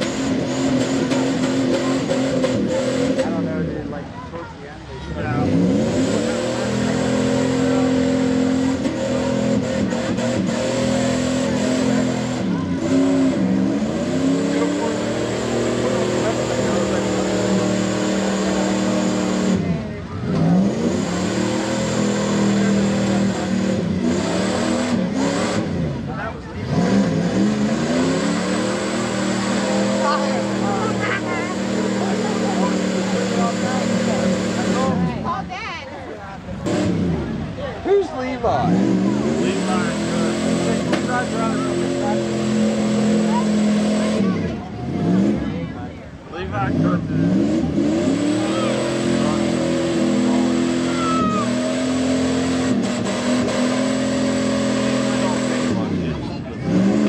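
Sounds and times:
truck engine revving: 0.0 - 57.0.

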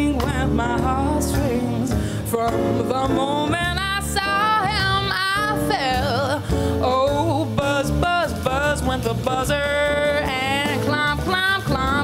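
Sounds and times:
double bass: 0.0 - 12.0
woman singing: 0.0 - 12.0.

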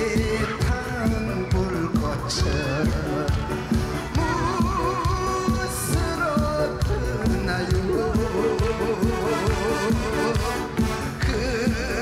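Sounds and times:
backing band with steady beat: 0.0 - 12.0
man singing with vibrato: 0.0 - 12.0.

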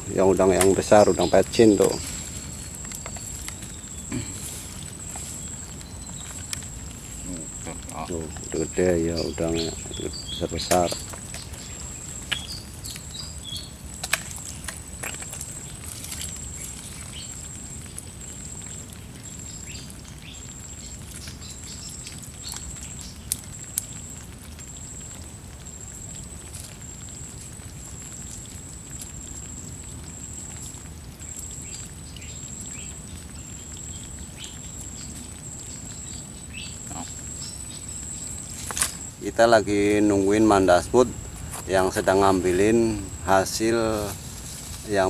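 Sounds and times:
hands sorting through wet leaves: 0.0 - 24.2, 30.6 - 45.0
insect trilling: 0.0 - 45.0.

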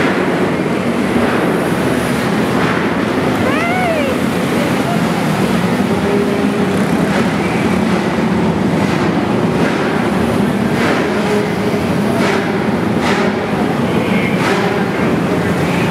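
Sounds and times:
small race car engines droning: 0.0 - 15.9.

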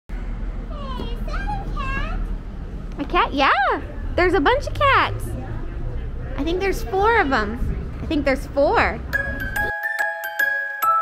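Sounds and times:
background murmur: 0.2 - 9.7.

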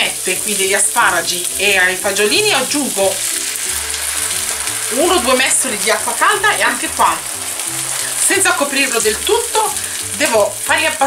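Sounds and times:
water being poured: 0.0 - 10.9
vegetables sizzling in oil: 0.0 - 11.0.

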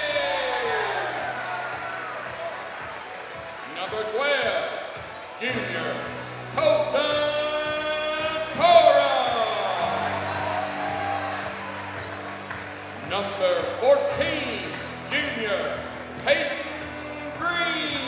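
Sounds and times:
music over pa: 0.0 - 18.0
announcer calling in echoing hall: 3.5 - 12.2, 12.8 - 18.0.

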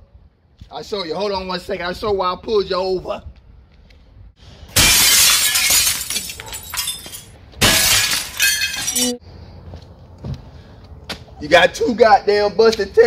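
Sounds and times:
glass shattering: 4.8 - 9.2.

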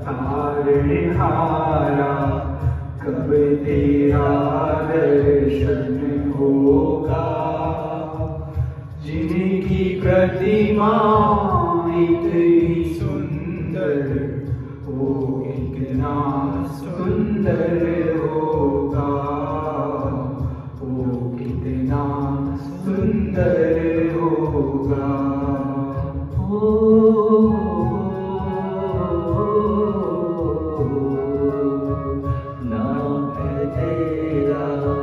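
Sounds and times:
man singing devotional song: 0.0 - 35.0.

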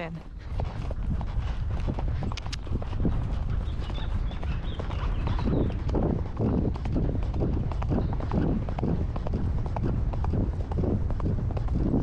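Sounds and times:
horse hoofbeats on grass: 0.0 - 12.0
low rumble: 0.0 - 12.0.

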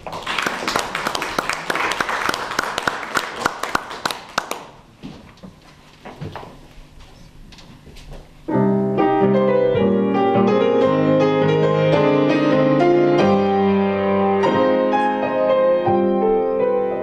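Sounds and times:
grand piano playing: 8.5 - 17.0.

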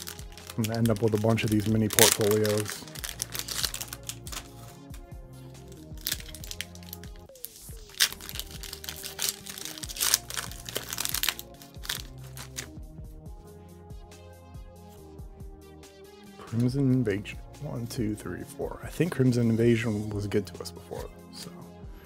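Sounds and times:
foil wrapper crinkling and tearing: 0.0 - 4.7, 5.6 - 12.8
background music: 0.0 - 22.0.

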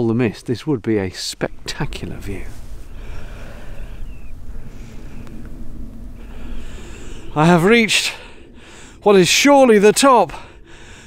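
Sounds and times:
wind buffeting microphone: 0.0 - 11.0
heavy breathing: 2.6 - 7.4, 8.0 - 9.0, 10.3 - 11.0.

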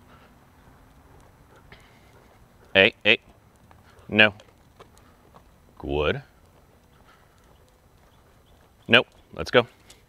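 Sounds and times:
footsteps on concrete: 0.2 - 10.0.

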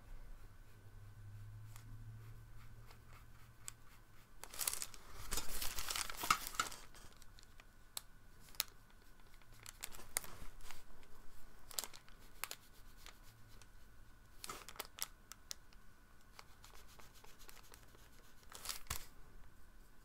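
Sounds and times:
brush scratching on paper: 0.2 - 5.2, 12.0 - 14.0, 16.4 - 18.6.

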